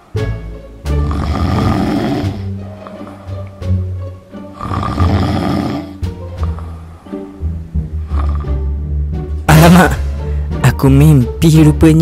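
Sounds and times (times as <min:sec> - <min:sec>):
background music: 0:00.0 - 0:12.0
man snoring: 0:01.0 - 0:02.6, 0:04.4 - 0:06.0, 0:08.0 - 0:08.7.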